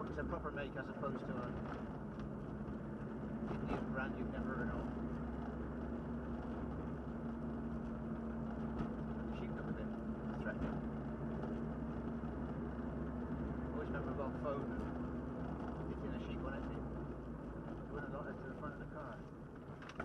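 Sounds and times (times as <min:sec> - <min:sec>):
car engine cruising: 0:00.0 - 0:20.0
tyre and road noise: 0:00.0 - 0:20.0.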